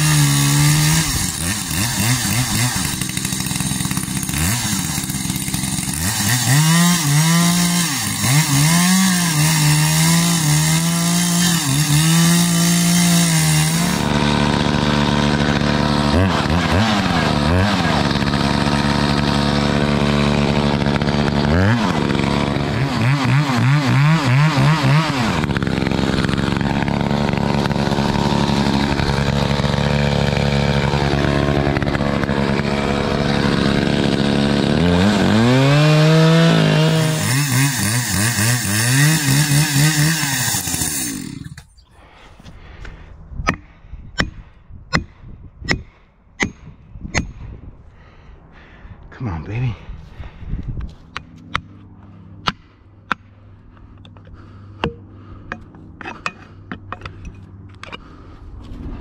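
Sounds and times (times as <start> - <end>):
chainsaw cutting wood: 0.0 - 41.8, 51.2 - 58.3.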